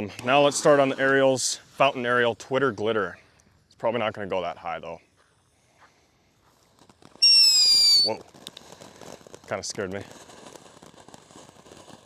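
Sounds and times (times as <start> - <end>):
fuse burning: 0.0 - 4.4, 5.2 - 12.0
crackling sparks: 6.3 - 12.0
firework whistle: 7.1 - 8.2.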